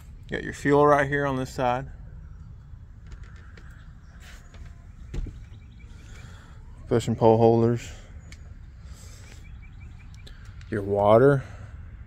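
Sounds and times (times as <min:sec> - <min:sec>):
steady low rumble: 0:00.0 - 0:12.0
small bird chirping: 0:03.4 - 0:06.9, 0:08.1 - 0:10.7.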